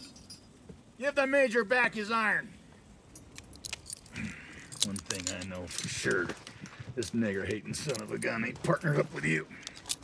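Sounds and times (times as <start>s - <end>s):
metal handcuffs clicking: 3.2s - 6.5s, 7.8s - 8.2s, 9.6s - 10.0s.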